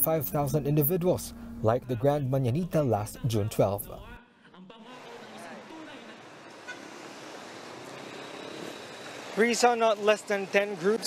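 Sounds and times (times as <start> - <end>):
faint road traffic hiss: 5.0 - 10.7.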